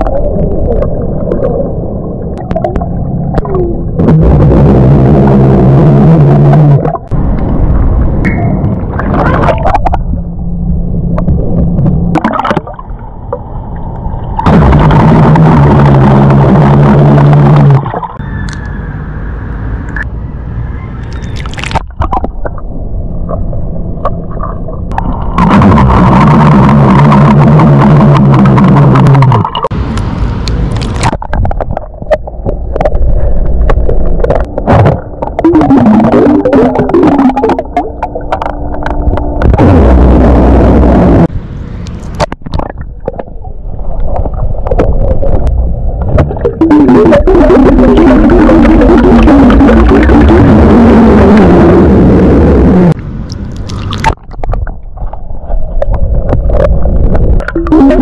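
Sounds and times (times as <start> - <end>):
water gurgling and bubbling: 0.0 - 18.2, 21.4 - 29.8, 30.8 - 41.3, 42.2 - 58.0.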